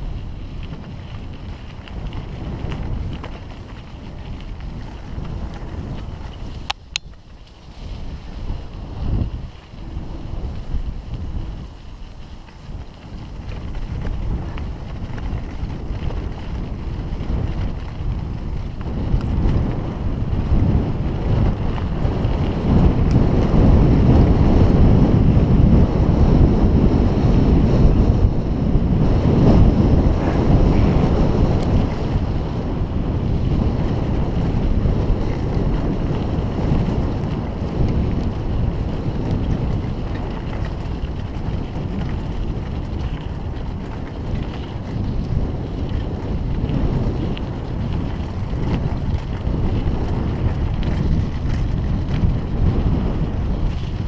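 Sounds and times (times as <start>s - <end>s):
bicycle rattling: 0.0s - 54.0s
wind buffeting microphone: 0.0s - 54.0s
tyres crunching over gravel: 0.1s - 24.2s, 33.0s - 52.5s.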